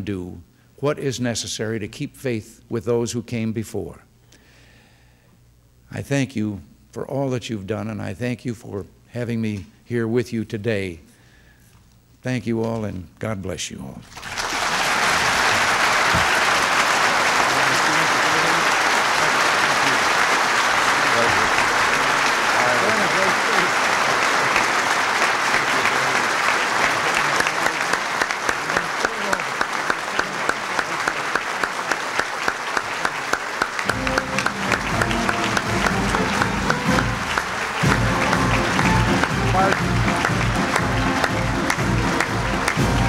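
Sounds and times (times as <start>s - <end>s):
audience applause: 14.1s - 43.0s
music: 33.8s - 43.0s.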